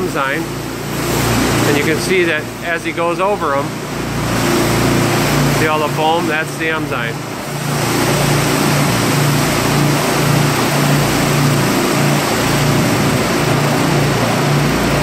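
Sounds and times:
low pulsing engine hum: 0.0s - 15.0s
pressure washer water hissing: 0.0s - 15.0s.

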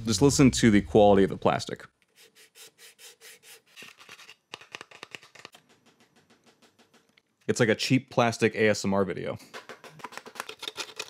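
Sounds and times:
plastic clicking and scraping: 9.9s - 11.0s.

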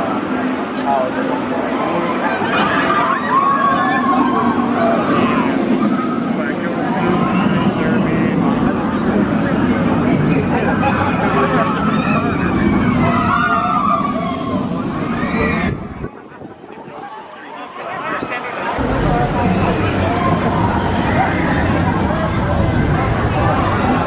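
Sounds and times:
people talking: 0.0s - 24.0s
roller coaster train on steel track: 0.0s - 24.0s
riders screaming: 1.9s - 7.6s, 11.3s - 16.0s.

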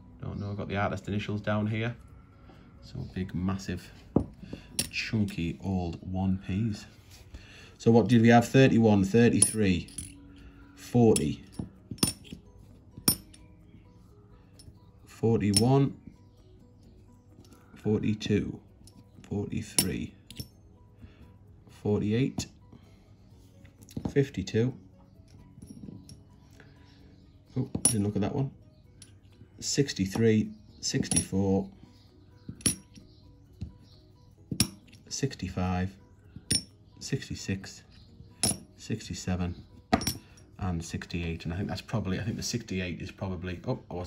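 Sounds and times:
faint background music: 0.0s - 44.0s
coins clinking: 9.0s - 10.4s, 11.1s - 13.5s, 32.5s - 33.1s.

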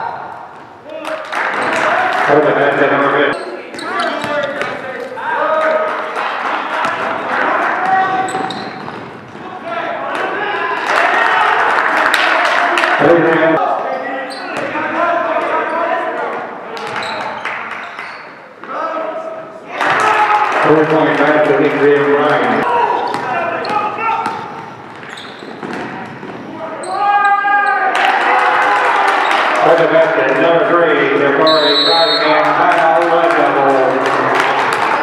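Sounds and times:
players and spectators calling out: 0.0s - 35.0s
shoes squeaking on court: 3.4s - 5.2s, 8.0s - 9.5s, 16.8s - 18.7s, 22.9s - 27.0s
basketball bouncing: 8.0s - 9.4s, 23.0s - 26.5s.

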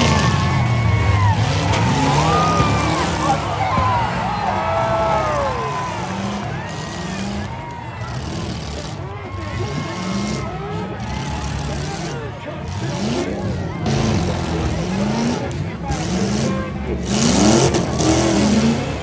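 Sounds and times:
crowd shouting: 0.0s - 19.0s
truck engines revving: 0.0s - 19.0s.

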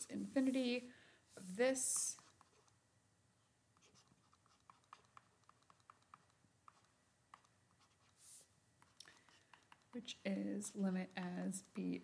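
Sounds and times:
stylus tapping on tablet screen: 3.9s - 8.2s, 8.8s - 10.2s.

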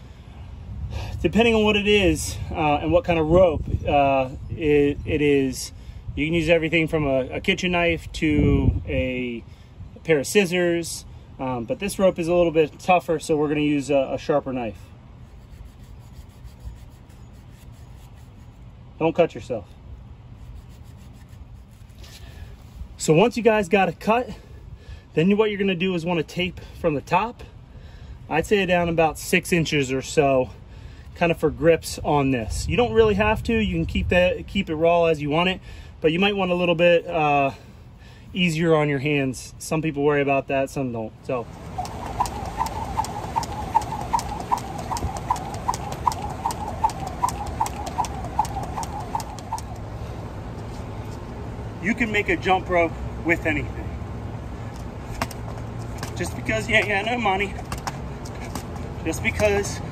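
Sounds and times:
knife sawing through rope: 15.2s - 18.6s, 20.4s - 22.3s
jump rope slapping: 41.6s - 49.9s.

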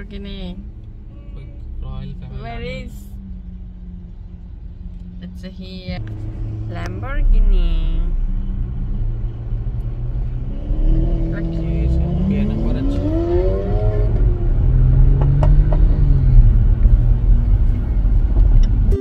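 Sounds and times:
car engine revving: 0.0s - 19.0s
engine and road noise: 0.0s - 19.0s.

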